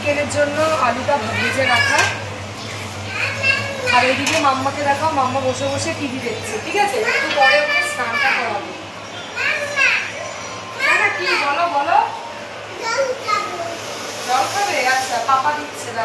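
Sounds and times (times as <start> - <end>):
toddler babbling and crying: 3.1 - 4.2, 9.4 - 10.2, 12.8 - 13.8.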